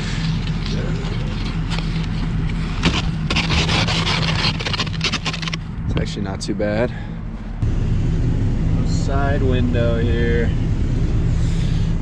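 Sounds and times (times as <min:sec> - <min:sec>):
frost scraped off windshield: 0:00.0 - 0:05.6
car engine humming: 0:00.0 - 0:12.0.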